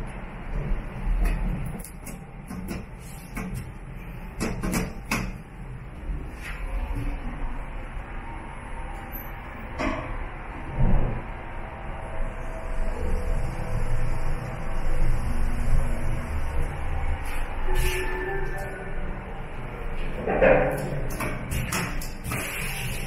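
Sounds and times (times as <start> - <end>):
elevator rumble and hum: 0.0 - 23.0.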